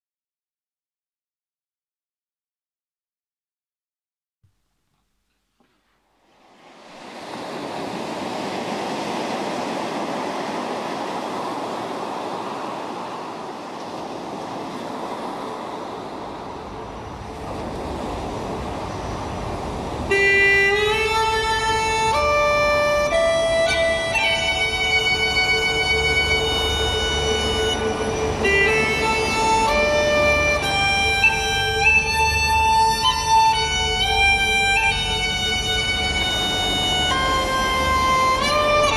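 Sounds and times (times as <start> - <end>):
steady rushing noise: 6.3 - 38.9
uilleann pipes melody: 20.0 - 38.9.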